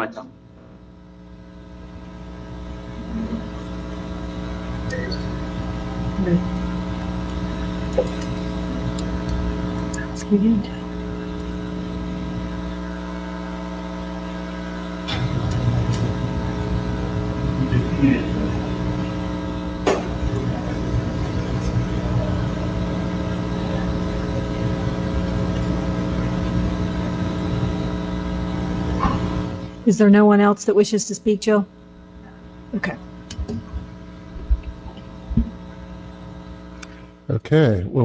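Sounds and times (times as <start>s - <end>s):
electrical buzz and hum: 0.0s - 38.0s.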